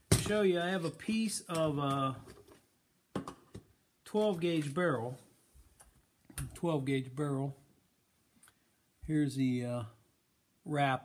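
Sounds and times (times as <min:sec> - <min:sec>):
man talking: 0:00.1 - 0:02.3, 0:04.0 - 0:05.3, 0:06.4 - 0:07.6, 0:09.0 - 0:10.0, 0:10.6 - 0:11.0.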